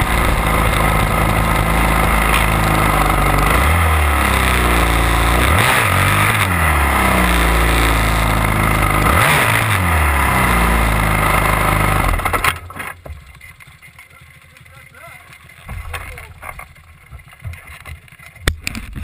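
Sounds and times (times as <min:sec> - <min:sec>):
dirt bike engine revving: 0:00.0 - 0:12.7.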